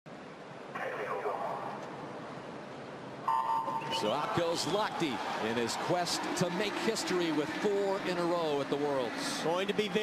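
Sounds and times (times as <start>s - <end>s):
arena background noise: 0.1s - 10.0s
high electronic beep: 3.3s - 4.0s.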